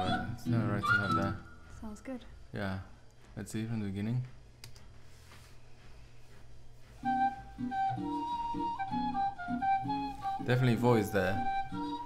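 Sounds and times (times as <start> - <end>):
flute melody: 0.0 - 1.7, 7.0 - 12.0.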